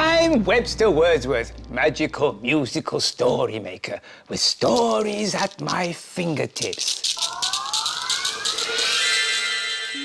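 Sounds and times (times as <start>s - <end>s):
shekere shaken rapidly: 6.6s - 9.0s.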